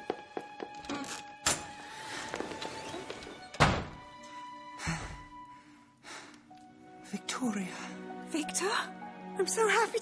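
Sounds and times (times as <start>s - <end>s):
quiet orchestral music: 0.0s - 10.0s.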